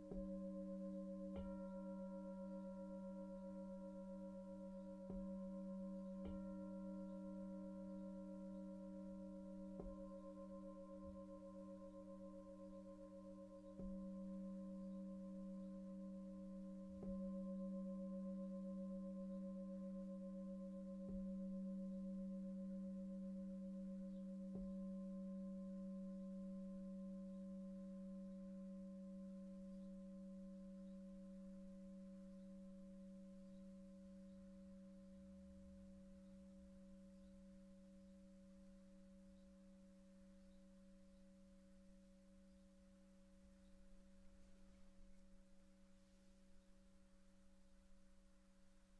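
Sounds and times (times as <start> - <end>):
singing bowl ringing: 0.0 - 35.1.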